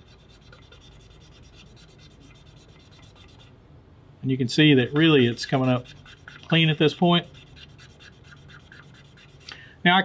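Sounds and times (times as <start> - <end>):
cotton swab rubbing metal surface: 0.0 - 3.5, 4.6 - 9.5.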